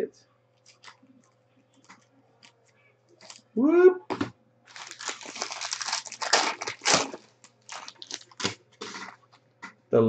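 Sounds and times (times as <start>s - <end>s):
foil pack tearing and crinkling: 3.2s - 3.4s, 4.7s - 9.4s.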